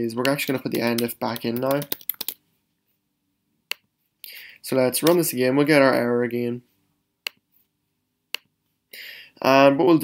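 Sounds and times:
computer keyboard keystrokes: 0.9s - 2.4s.

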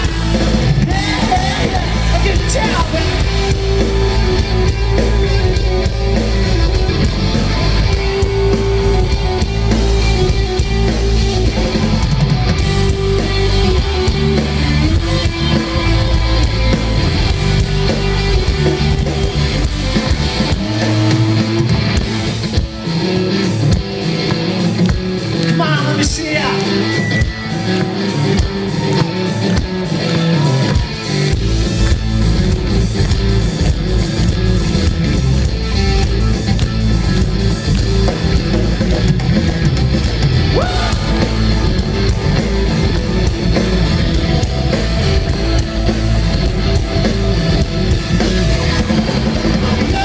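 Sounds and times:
live rock band: 0.0s - 50.0s.

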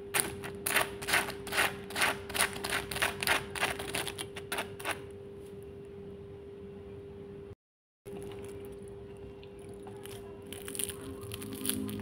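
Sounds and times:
faint steady hum: 3.6s - 12.0s
fried food crunching: 8.1s - 12.0s.

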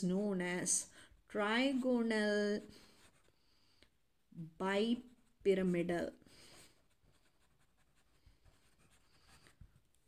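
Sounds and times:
marker pen scratching: 6.4s - 10.0s.

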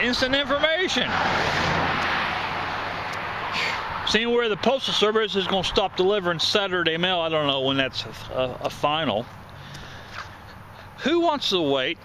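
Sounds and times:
vehicle passing on road: 0.0s - 11.1s.

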